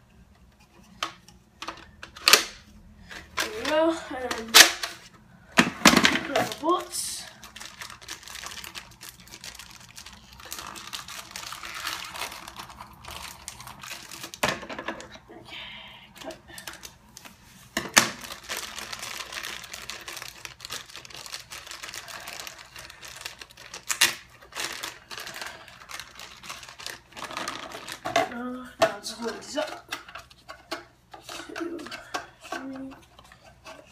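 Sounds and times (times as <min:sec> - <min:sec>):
plastic bag crinkling: 0:05.9 - 0:14.6, 0:16.2 - 0:30.5.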